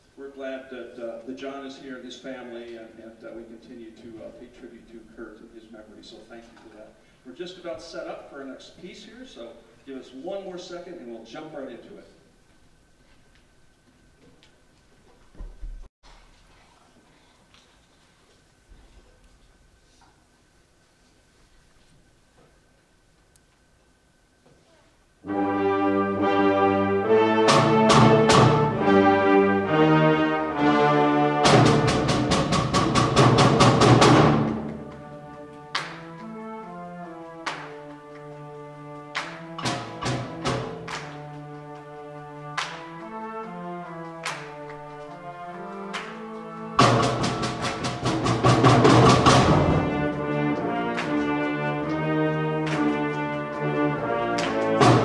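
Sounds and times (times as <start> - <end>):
concert band playing: 25.2 - 55.0
struck percussion notes: 25.2 - 55.0.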